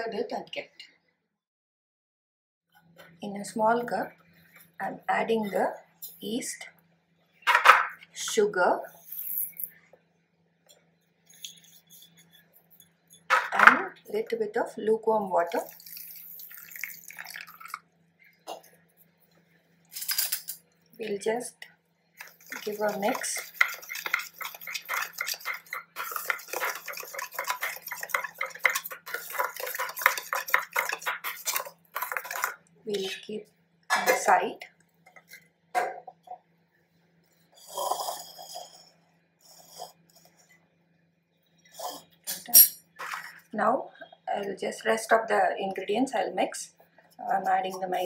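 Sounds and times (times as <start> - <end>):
metal spoon scraping a steel bowl: 11.2 - 13.4, 22.2 - 33.1, 41.8 - 43.4.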